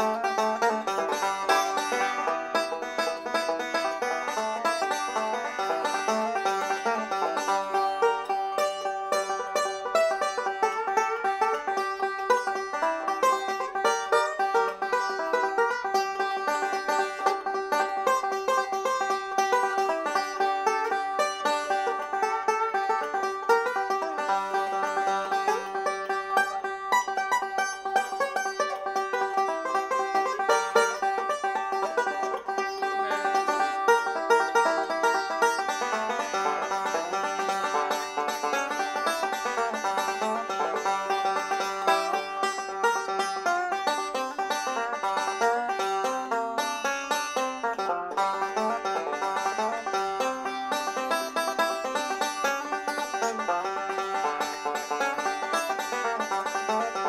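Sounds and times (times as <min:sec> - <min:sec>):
banjo picking: 0:00.0 - 0:57.0.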